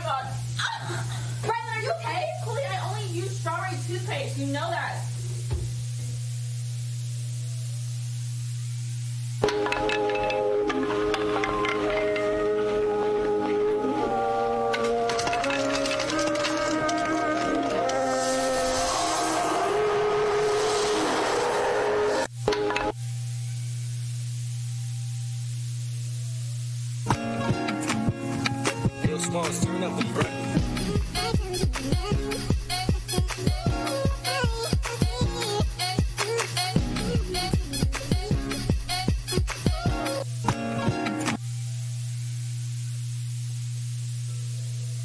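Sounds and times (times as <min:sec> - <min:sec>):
low electrical hum: 0:00.0 - 0:34.7, 0:36.8 - 0:45.0
hissing track with held tones: 0:00.0 - 0:45.0.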